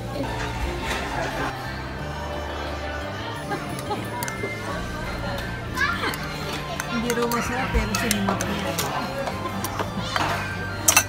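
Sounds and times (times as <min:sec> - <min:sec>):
background music: 0:00.0 - 0:11.0
indistinct background voices: 0:00.0 - 0:11.0.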